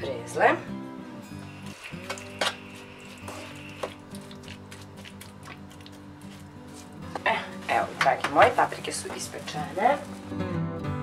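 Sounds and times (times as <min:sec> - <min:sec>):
acoustic guitar music: 0:00.0 - 0:11.0
spoon stirring meat in a pan: 0:02.0 - 0:06.8.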